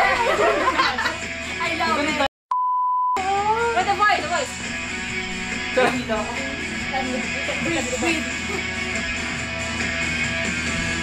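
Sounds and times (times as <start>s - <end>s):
high-pitched censor bleep tone: 2.5s - 3.2s.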